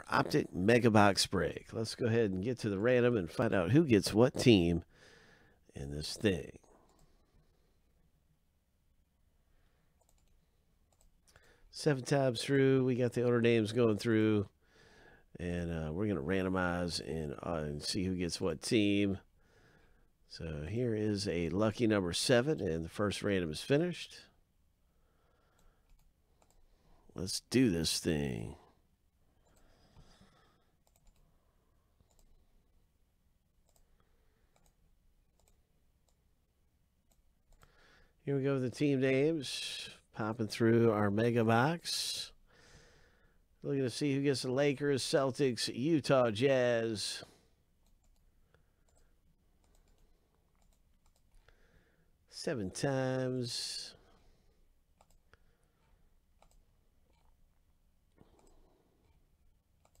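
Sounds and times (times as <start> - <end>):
faint computer mouse clicks: 10.0 - 11.4, 25.5 - 26.6, 33.6 - 34.8, 47.8 - 51.5.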